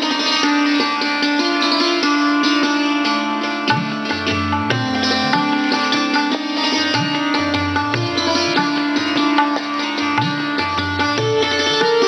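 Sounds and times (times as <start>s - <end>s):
hammered dulcimer notes: 0.0s - 12.0s
tabla rhythm: 0.0s - 12.0s.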